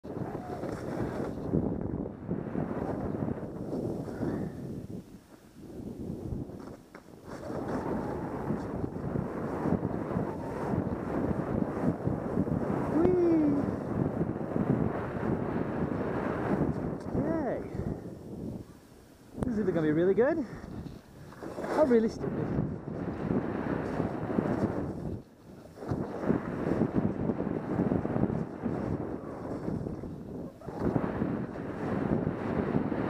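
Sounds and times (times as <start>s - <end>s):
wind rushing over microphone: 0.0s - 33.0s.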